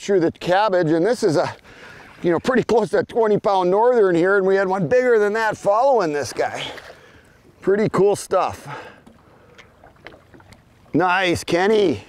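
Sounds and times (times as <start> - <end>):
water lapping against boat: 0.0 - 3.4, 4.4 - 12.0.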